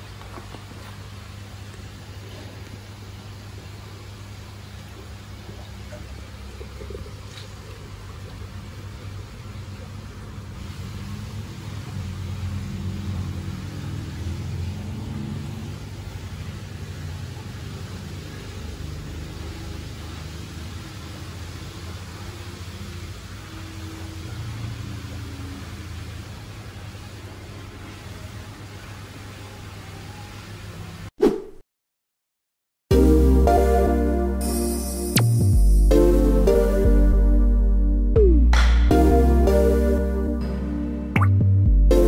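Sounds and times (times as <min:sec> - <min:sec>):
even hiss: 0:34.4 - 0:36.5.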